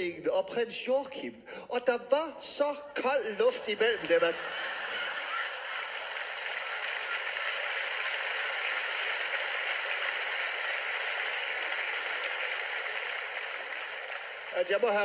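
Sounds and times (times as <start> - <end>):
audience applauding: 3.8 - 15.0.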